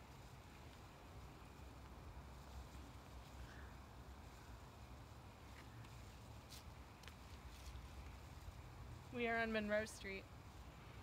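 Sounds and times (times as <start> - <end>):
faint low rumble: 0.0 - 11.0.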